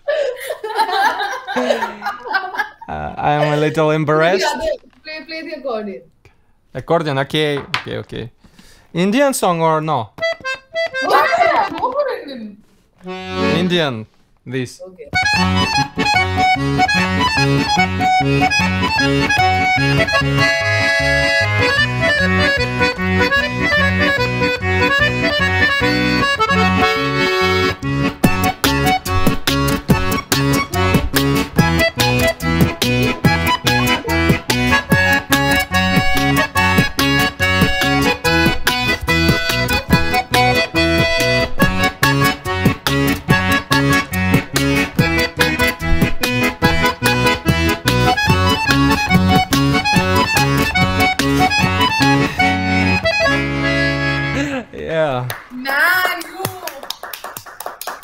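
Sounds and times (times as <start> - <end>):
button accordion melody: 3.3 - 4.8, 10.2 - 11.7, 13.0 - 14.1, 15.2 - 54.7.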